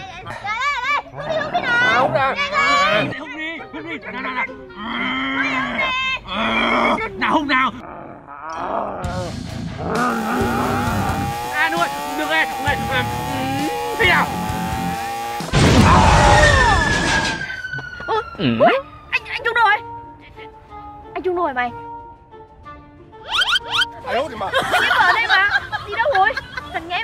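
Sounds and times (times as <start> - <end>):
music: 0.0 - 7.7, 8.5 - 27.0
person imitating a bull: 7.8 - 15.1
falling tones: 10.0 - 18.5.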